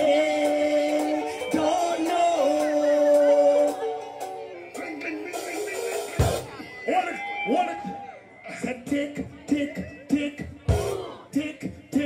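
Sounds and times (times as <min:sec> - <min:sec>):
dancehall music through speakers: 0:00.0 - 0:12.0.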